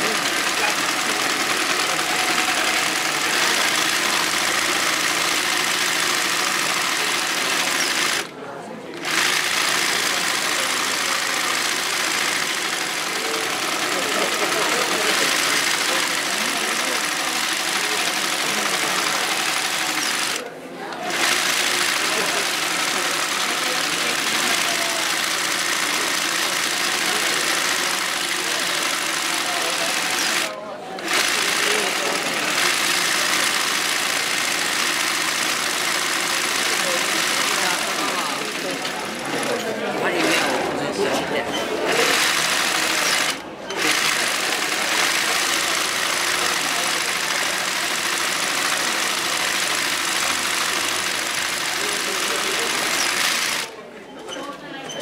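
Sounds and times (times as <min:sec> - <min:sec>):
embroidery machine running: 0:00.0 - 0:40.8, 0:41.8 - 0:53.8.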